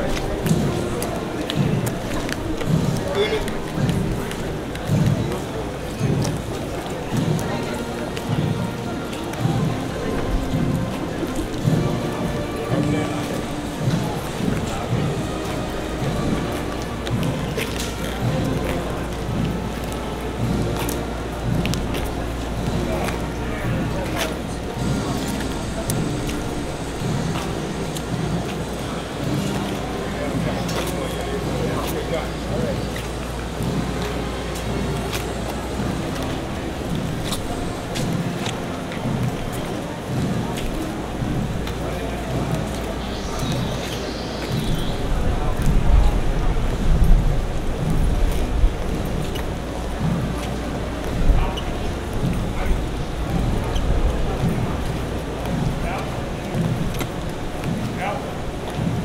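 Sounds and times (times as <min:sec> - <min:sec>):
general hubbub: 0:00.0 - 0:59.0
low street rumble: 0:00.0 - 0:59.0
muffled band music: 0:00.0 - 0:59.0
steady rushing noise: 0:00.0 - 0:59.0
low recurring note: 0:40.2 - 0:47.1.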